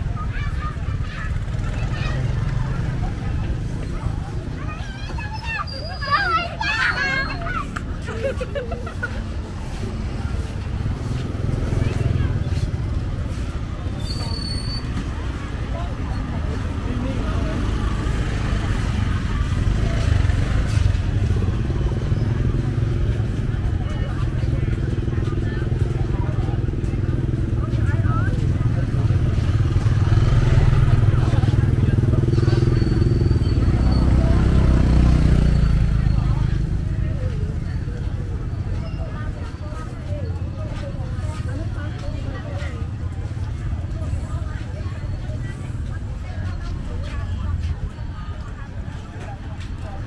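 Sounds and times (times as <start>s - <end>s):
motor scooters passing: 0.0s - 50.0s
people talking: 0.0s - 50.0s.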